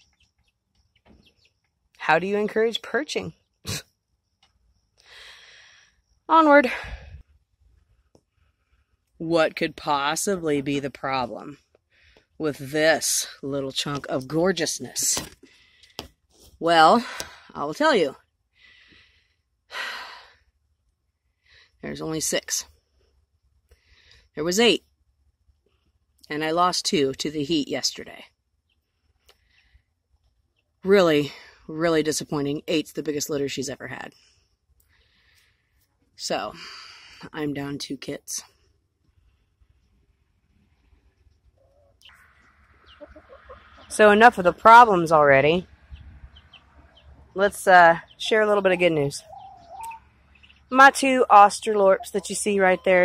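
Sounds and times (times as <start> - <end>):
faint breath: 5.0 - 7.3, 15.4 - 16.0, 18.5 - 20.5, 23.7 - 24.4, 34.1 - 35.9.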